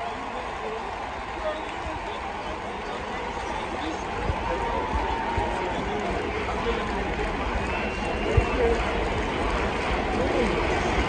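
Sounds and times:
stadium crowd chattering: 0:00.0 - 0:11.0.

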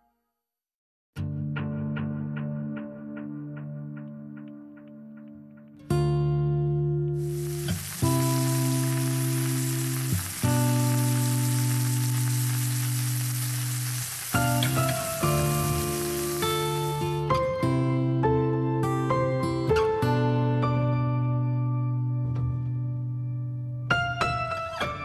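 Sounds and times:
food sizzling in a frying pan: 0:07.2 - 0:17.3.

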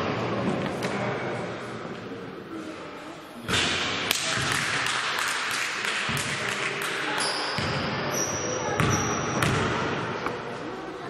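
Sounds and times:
basketball bouncing on hall floor: 0:03.5 - 0:10.4.

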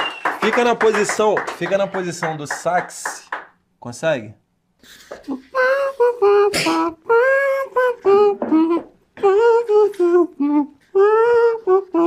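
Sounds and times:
voice imitating a saxophone: 0:05.2 - 0:12.0.

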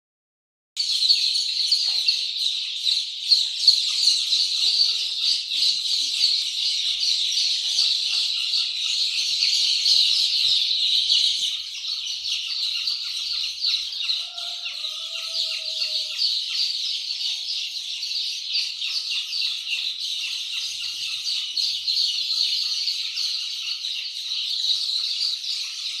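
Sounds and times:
chicks peeping: 0:00.8 - 0:26.0.

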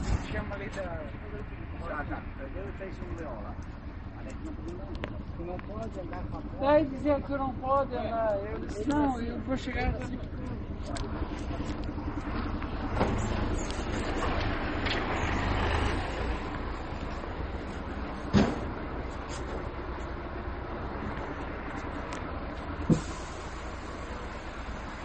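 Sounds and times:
vehicle engine rumbling: 0:00.0 - 0:25.0.

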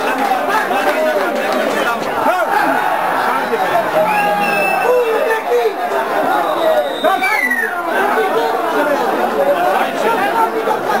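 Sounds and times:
voices talking and shouting: 0:00.0 - 0:11.0.

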